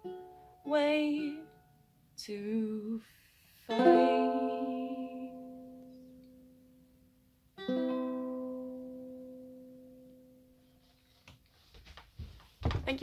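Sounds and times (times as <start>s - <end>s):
ukulele chord strummed: 0.0s - 2.8s, 3.7s - 10.6s
soft knocks: 11.7s - 13.0s.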